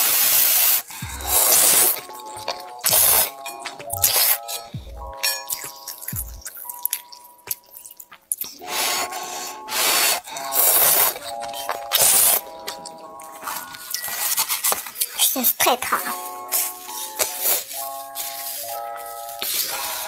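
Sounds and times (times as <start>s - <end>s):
noodles being slurped: 0.0s - 3.4s, 5.5s - 15.2s
background music with held tones: 0.0s - 20.0s.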